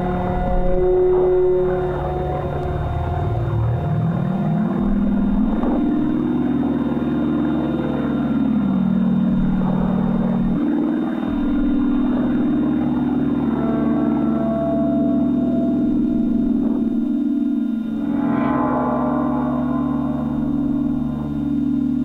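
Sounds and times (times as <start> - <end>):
low beating drone: 0.0 - 22.0.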